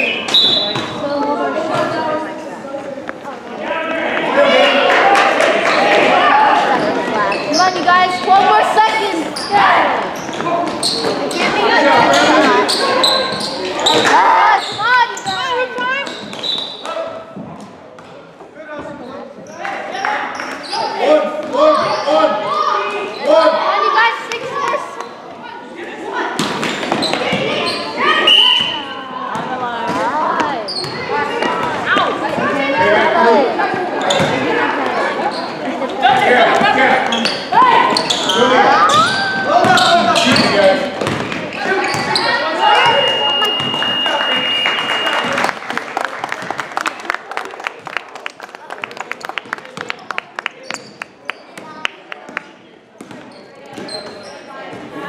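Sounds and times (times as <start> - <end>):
players and spectators shouting: 3.6 - 16.0, 19.8 - 25.0, 27.1 - 45.4
basketball bouncing on hardwood floor: 41.0 - 42.1.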